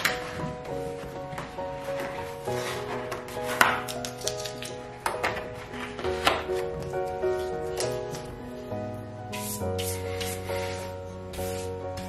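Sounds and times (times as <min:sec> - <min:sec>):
paper sheet crackling: 0:00.0 - 0:08.3
soft background music: 0:00.0 - 0:12.0.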